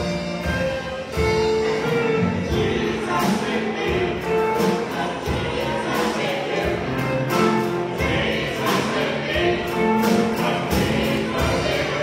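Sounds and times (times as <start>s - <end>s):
bass guitar: 0.0s - 12.0s
drum kit beat: 0.0s - 12.0s
group of voices singing: 1.4s - 12.0s.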